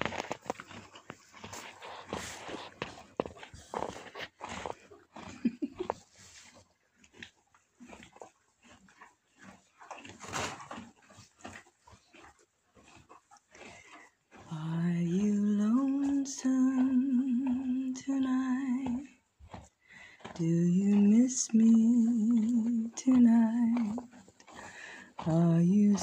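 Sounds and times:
horse rustling in straw: 0.0s - 4.6s, 6.1s - 6.6s
horse crunching hay: 0.0s - 26.0s
horse breathy blows: 13.5s - 14.2s, 19.8s - 20.4s, 24.2s - 25.2s.

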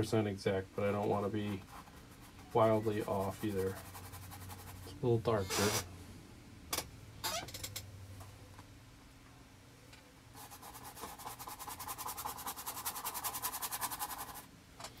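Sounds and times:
paintbrush scrubbing on canvas: 1.4s - 5.8s, 10.4s - 14.4s.

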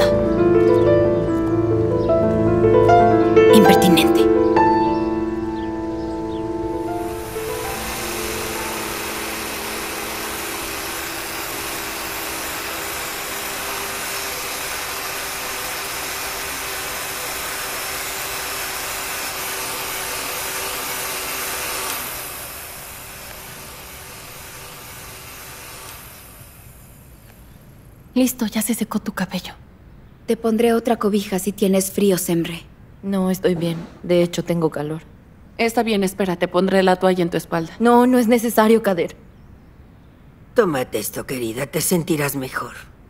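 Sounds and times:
soft background music: 0.0s - 12.0s
hair dryer blowing: 6.8s - 27.0s.

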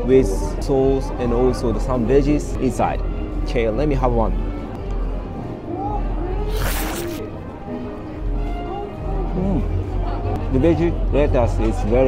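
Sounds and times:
soft background music: 0.0s - 12.0s
crunchy bite of sandwich: 6.5s - 7.2s.

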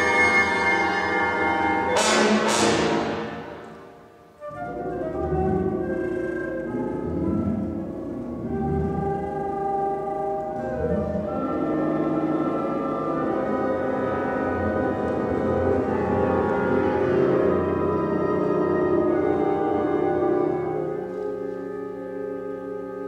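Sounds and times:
orchestral music with sustained dissonant chords: 0.0s - 23.0s.

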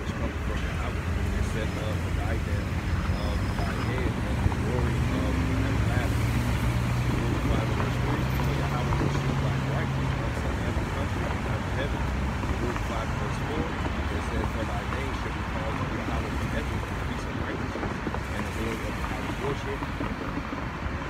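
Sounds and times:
cars passing: 0.0s - 21.0s
low engine hum: 0.0s - 21.0s.

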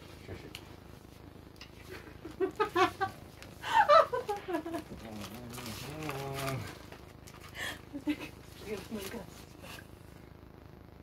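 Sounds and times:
rustling and scuffling: 8.4s - 9.9s.

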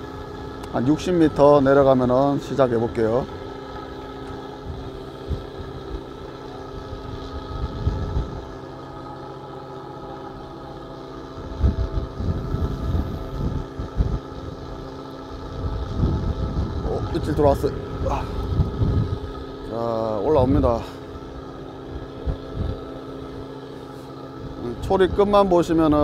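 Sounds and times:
boat engine humming: 0.0s - 26.0s
wind gusting on microphone: 4.5s - 8.6s, 11.3s - 21.0s, 21.8s - 23.6s.

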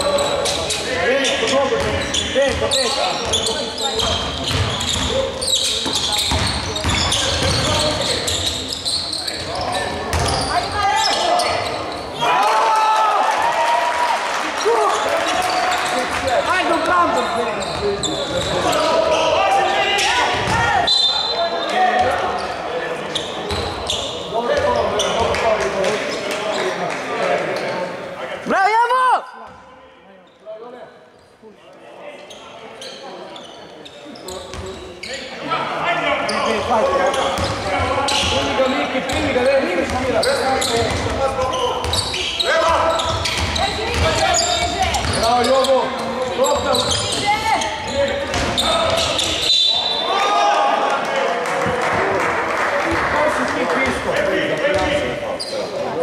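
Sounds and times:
crowd voices: 0.0s - 56.0s
players shouting: 41.4s - 53.7s.

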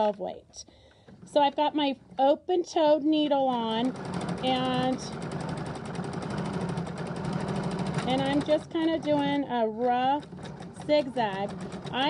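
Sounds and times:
sewing machine running: 3.2s - 12.0s.

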